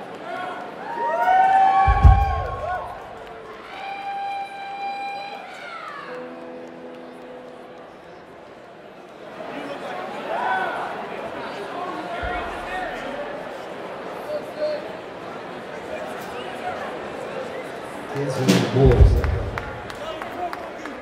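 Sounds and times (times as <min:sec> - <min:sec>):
audience shouts and talk: 0:00.0 - 0:21.0
audience whooping: 0:00.8 - 0:06.3
low thump: 0:01.9 - 0:03.0, 0:12.2 - 0:13.0, 0:18.8 - 0:19.9.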